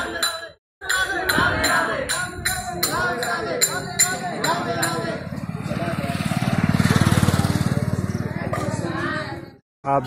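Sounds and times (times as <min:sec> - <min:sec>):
small engine vehicle passing: 0:04.9 - 0:09.6.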